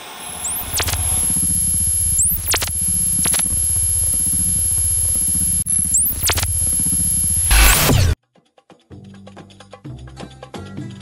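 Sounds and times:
high-pitched whine: 0:00.0 - 0:08.2
sharp glitch zaps: 0:00.0 - 0:08.2
static hiss: 0:00.0 - 0:08.2
low pulsing synthesizer hum: 0:00.5 - 0:08.2.

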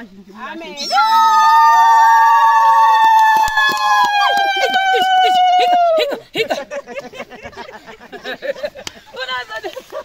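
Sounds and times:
woman's long high cry: 0:04.1 - 0:06.2.

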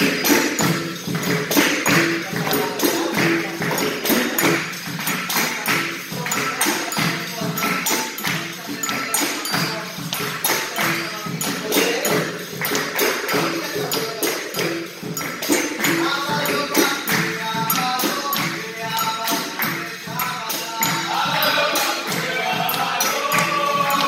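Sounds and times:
atabaque drum beat: 0:00.0 - 0:24.0
pandeiro jingling: 0:00.0 - 0:24.0
rhythmic hand-clapping: 0:00.0 - 0:24.0.

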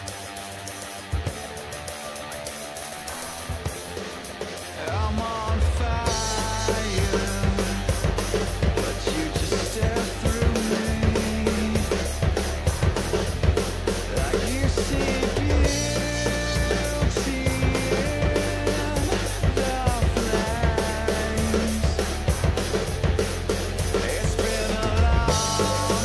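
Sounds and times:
backing track music: 0:00.0 - 0:26.0
drum kit playing: 0:00.0 - 0:26.0.

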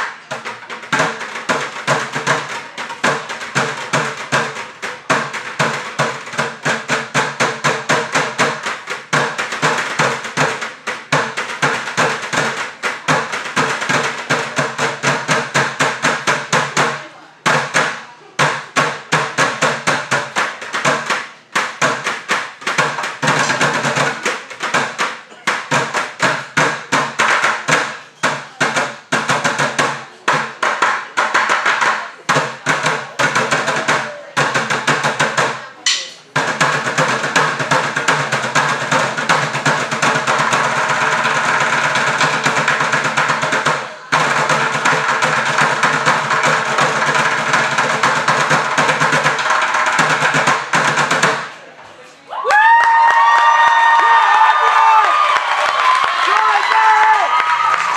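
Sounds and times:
drumsticks on plastic buckets: 0:29.8 - 0:38.2.

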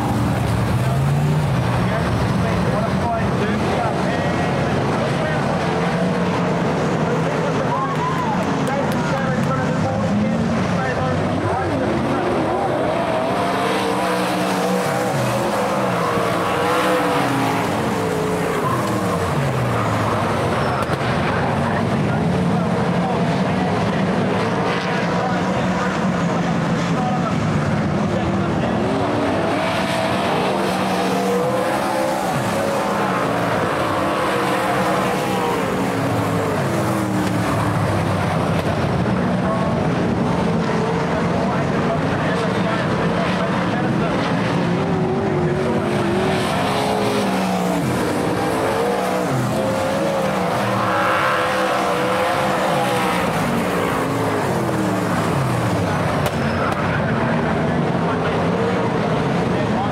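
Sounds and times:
race car engines: 0:00.0 - 0:59.9.

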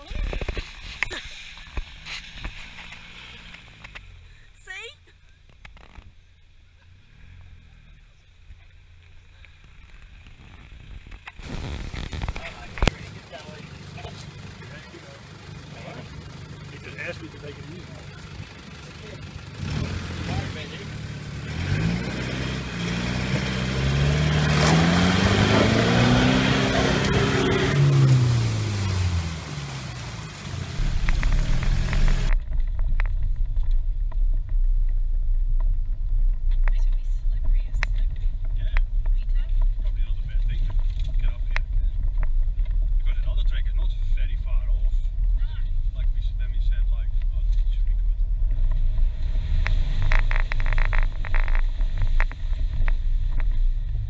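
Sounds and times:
vehicle rumbling on dirt track: 0:00.0 - 0:54.0
engine revving: 0:01.7 - 0:04.3, 0:09.7 - 0:32.5, 0:36.7 - 0:54.0.

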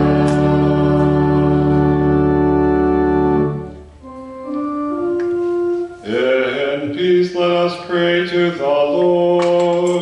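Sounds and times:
church organ chord: 0:00.0 - 0:09.3.

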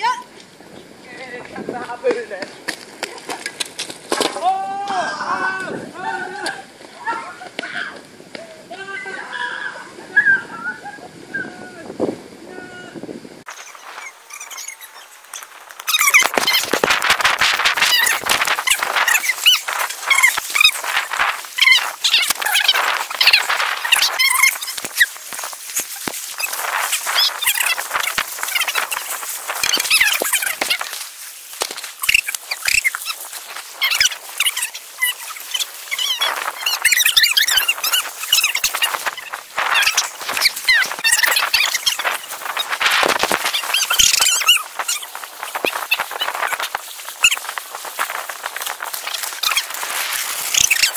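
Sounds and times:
birds chirping and squawking: 0:13.5 - 0:31.0, 0:32.0 - 0:50.9.

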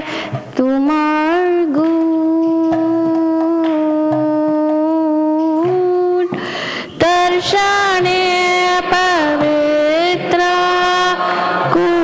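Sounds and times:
singer taking a breath: 0:00.0 - 0:00.5, 0:06.3 - 0:07.0
woman singing: 0:00.0 - 0:12.0.

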